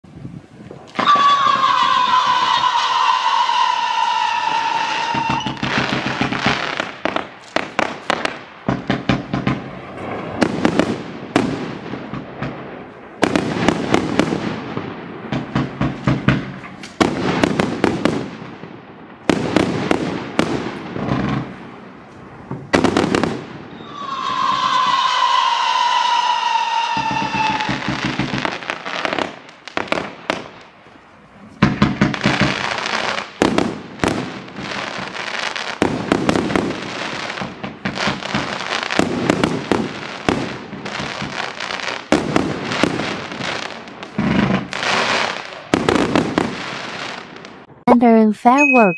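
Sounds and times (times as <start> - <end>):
fireworks crackling: 0.0 - 47.9
fireworks shots and aerial bursts: 0.0 - 48.9
falling whistle: 1.0 - 5.6, 23.8 - 27.8.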